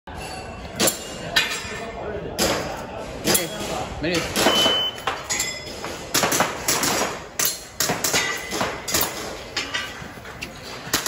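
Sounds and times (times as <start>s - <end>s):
people talking: 0.2s - 5.4s.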